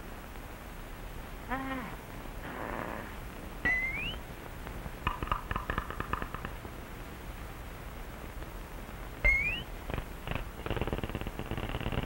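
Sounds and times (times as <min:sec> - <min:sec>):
high whistle sliding upward: 0:03.7 - 0:04.2, 0:09.2 - 0:09.7
rapid buzzing rattle: 0:09.3 - 0:12.0.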